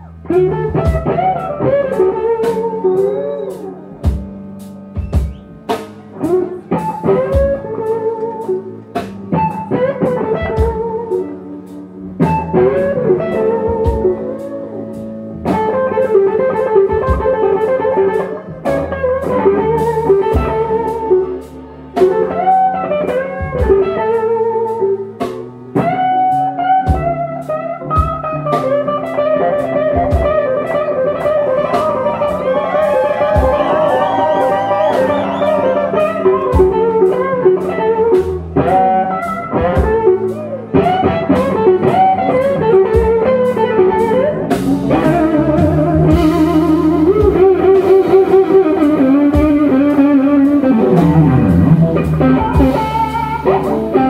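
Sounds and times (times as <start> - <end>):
bass guitar: 0.0 - 54.0
drums: 0.0 - 54.0
electric guitar solo: 0.0 - 54.0.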